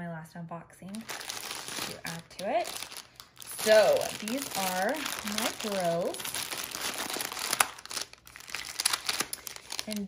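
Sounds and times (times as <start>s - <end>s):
plastic wrapping crinkling: 0.9s - 10.0s.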